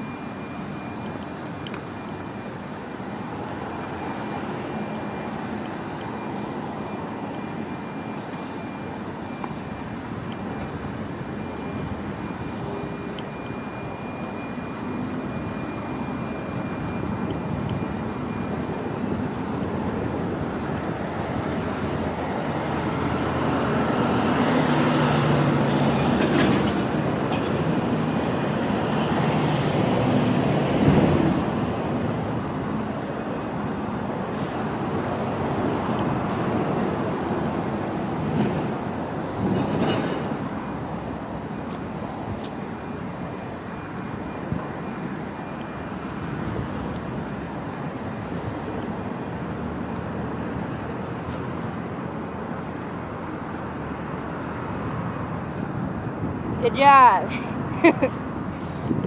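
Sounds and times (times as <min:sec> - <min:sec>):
street traffic: 0:00.0 - 0:59.0.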